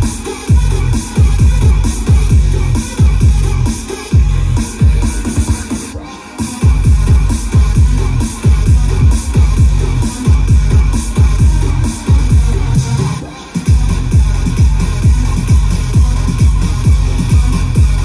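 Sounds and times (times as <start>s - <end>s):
heavy kick drum: 0.0s - 5.8s, 6.6s - 18.0s
loud electronic dance music: 0.0s - 18.0s.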